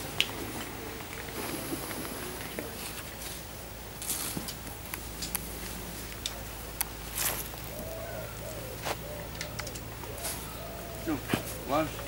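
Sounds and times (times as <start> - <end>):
dove cooing: 6.4 - 12.0.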